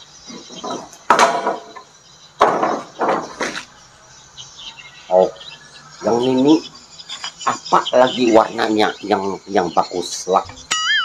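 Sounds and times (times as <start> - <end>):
faint high chirping: 0.0 - 11.0.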